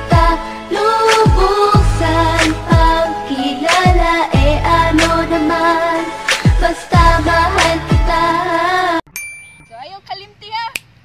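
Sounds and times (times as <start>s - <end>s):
bell-like ding: 9.1s - 10.0s.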